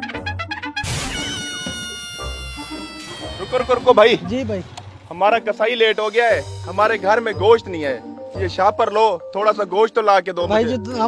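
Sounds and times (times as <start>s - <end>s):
sharp hit: 0.8s - 1.6s
cat-like wail: 0.9s - 4.2s.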